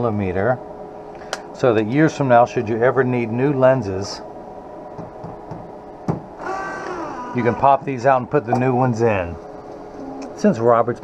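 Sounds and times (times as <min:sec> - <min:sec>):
machine humming: 0:00.0 - 0:11.0.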